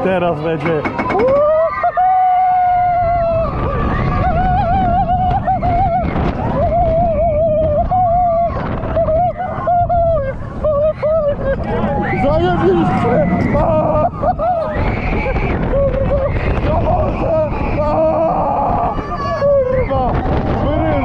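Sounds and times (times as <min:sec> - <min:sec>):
roller coaster train rumbling: 0:00.0 - 0:21.0
wind rushing: 0:02.2 - 0:21.0
rider screaming: 0:10.9 - 0:21.0.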